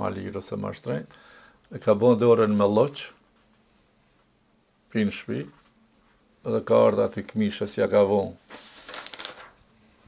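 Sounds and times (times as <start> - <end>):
book pages riffled: 8.5 - 9.6.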